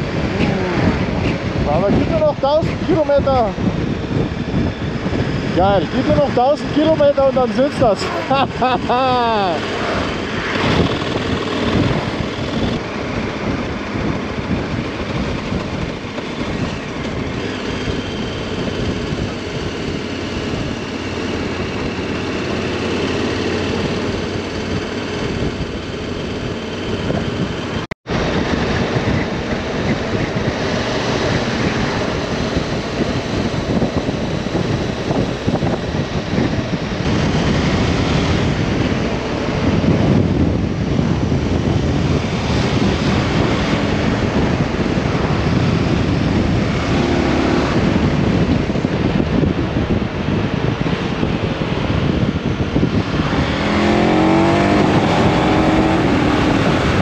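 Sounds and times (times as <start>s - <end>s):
motorcycle engine running: 0.0s - 57.0s
wind and road rush: 0.0s - 57.0s.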